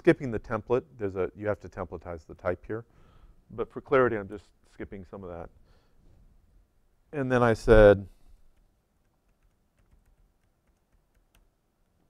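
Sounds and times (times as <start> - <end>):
typing on computer keyboard: 9.0 - 12.0.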